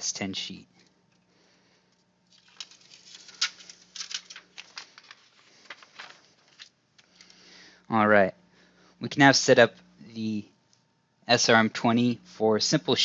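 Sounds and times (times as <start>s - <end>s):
plastic liner peeling crackles: 2.3s - 7.3s.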